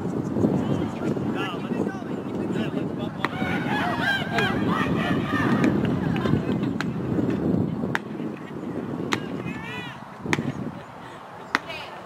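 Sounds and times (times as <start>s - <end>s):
wind on microphone: 0.0s - 12.0s
murmur of distant voices: 0.3s - 12.0s.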